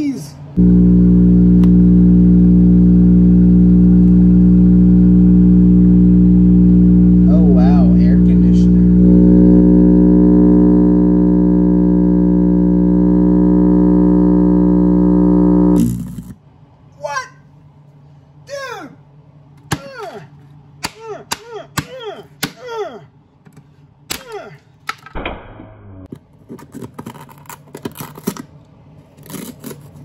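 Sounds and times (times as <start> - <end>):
distorted speaker buzz: 0.6 - 16.4.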